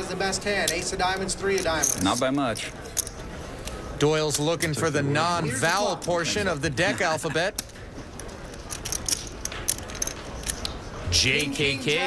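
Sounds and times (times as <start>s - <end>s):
murmur of room: 0.0s - 12.0s
poker chips and cards clicking: 0.5s - 4.9s, 5.6s - 12.0s.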